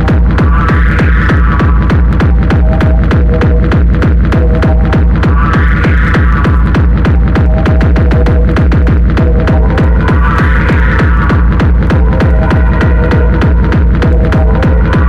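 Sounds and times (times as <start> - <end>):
drum and bass music: 0.0 - 15.0
synth phrase: 4.4 - 15.0.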